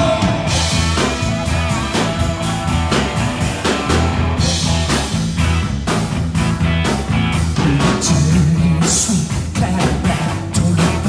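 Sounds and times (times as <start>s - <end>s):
bass guitar: 0.0s - 11.0s
drum kit steady beat: 0.0s - 11.0s
electric guitar: 0.0s - 11.0s.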